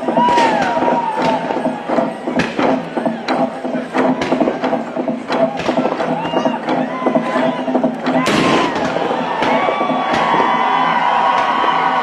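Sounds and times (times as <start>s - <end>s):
log drum wooden strikes: 0.0s - 12.0s
low drum tones: 0.0s - 12.0s.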